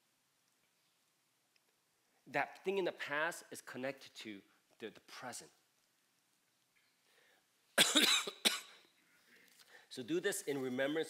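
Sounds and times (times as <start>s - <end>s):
man coughing: 7.8s - 8.8s.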